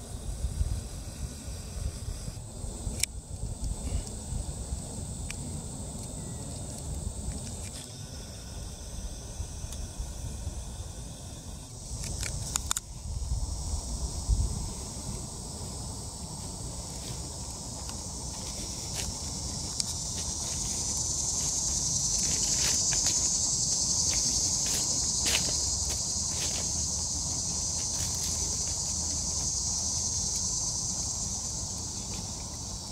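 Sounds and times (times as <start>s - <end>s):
insects chorus: 0.0s - 32.9s
wind buffeting microphone: 11.8s - 15.4s
footsteps on grass: 16.3s - 30.8s.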